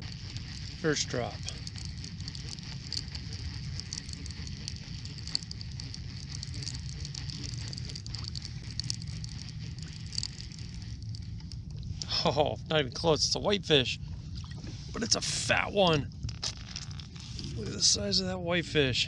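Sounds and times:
crackle of small ticks: 0:00.0 - 0:18.2
low rumble of wind: 0:00.0 - 0:19.0
water around a small boat: 0:00.0 - 0:19.0.

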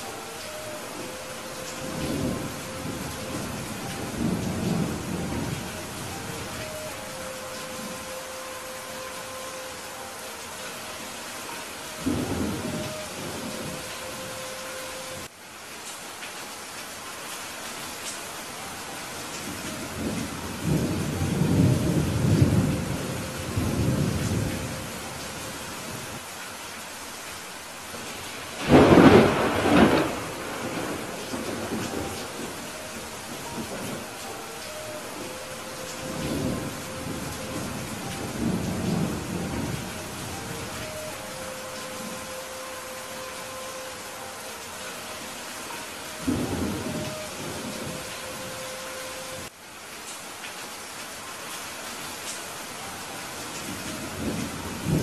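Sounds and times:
thunder rumbling: 0:00.0 - 0:09.9, 0:19.5 - 0:26.2, 0:28.0 - 0:43.7
steady rain: 0:00.0 - 0:55.0.

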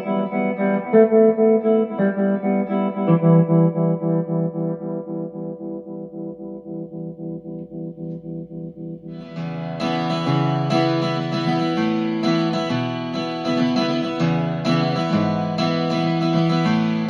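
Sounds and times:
pulsing electric guitar chord: 0:00.0 - 0:17.0.

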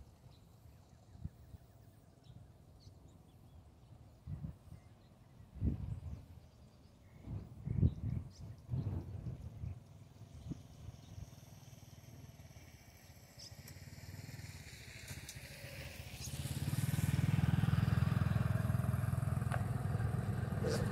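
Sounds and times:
vehicle engine hum: 0:05.8 - 0:20.9.

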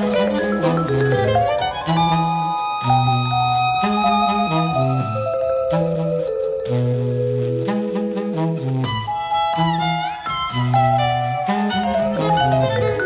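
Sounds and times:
tenor saxophone: 0:00.0 - 0:13.0
bowed violin: 0:08.9 - 0:13.0.

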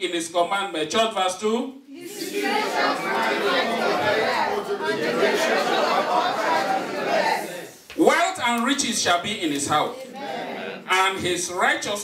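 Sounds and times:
congregation reading aloud in unison: 0:00.4 - 0:12.0.

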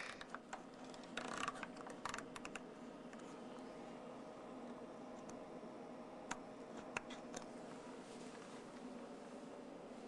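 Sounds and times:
compass clicks and rattles: 0:00.0 - 0:02.6.

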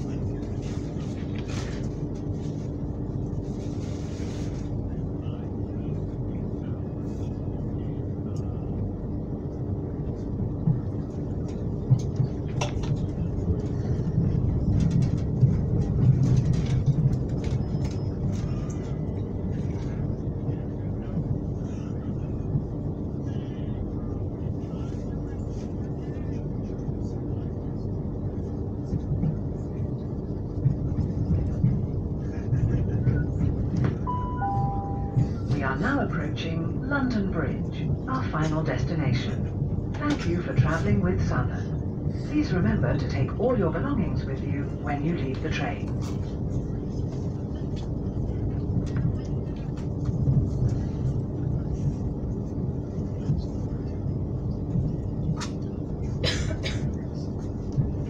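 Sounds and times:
faint hum: 0:00.0 - 0:58.0
train wheels rumbling on rails: 0:00.0 - 0:58.0
two-note falling chime: 0:34.1 - 0:35.4.

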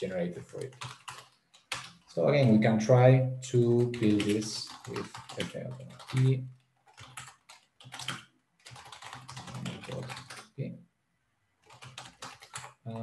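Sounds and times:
computer keyboard typing: 0:00.4 - 0:02.1, 0:03.8 - 0:10.5, 0:11.6 - 0:13.0.

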